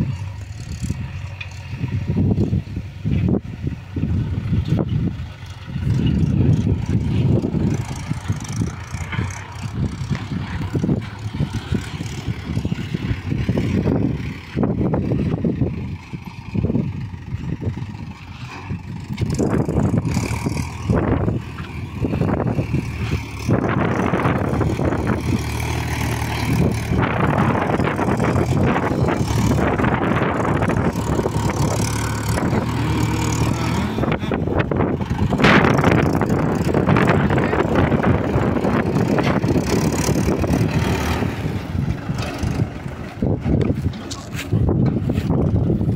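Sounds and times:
tractor diesel engine: 0.0s - 45.9s
wind buffeting microphone: 0.0s - 45.9s.

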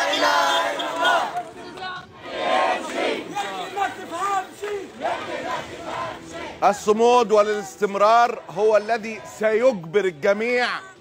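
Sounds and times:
crowd of protesters shouting: 0.0s - 11.0s.

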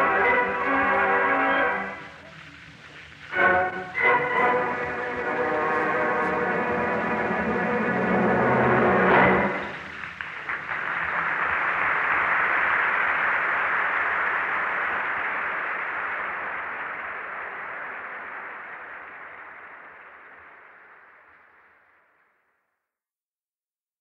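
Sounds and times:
audience applause: 0.0s - 22.2s
recording hiss: 0.0s - 22.9s.

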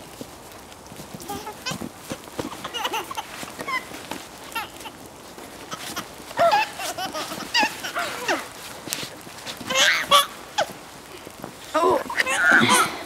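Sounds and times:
baby laughing: 2.5s - 3.9s, 4.5s - 5.0s, 5.7s - 8.5s, 9.7s - 10.3s.

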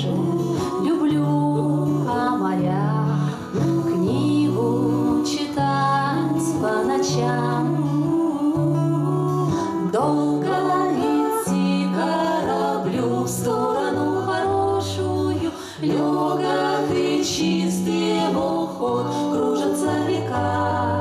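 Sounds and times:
plucked acoustic guitar: 0.0s - 21.0s
women singing together: 0.0s - 21.0s.

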